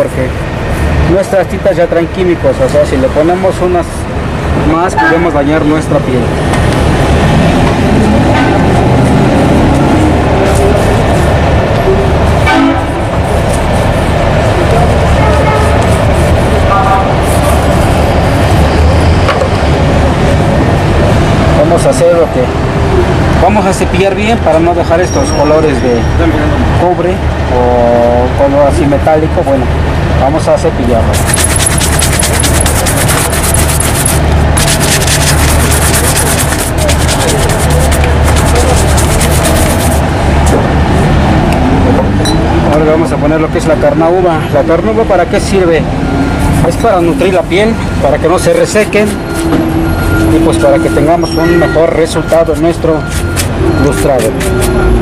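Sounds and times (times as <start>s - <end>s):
street traffic rumble: 0.0s - 55.0s
shoe brush strokes on leather: 31.2s - 40.0s.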